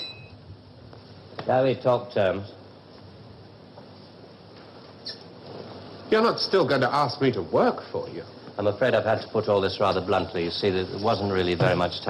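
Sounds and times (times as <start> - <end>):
old recording hiss: 0.0 - 12.0.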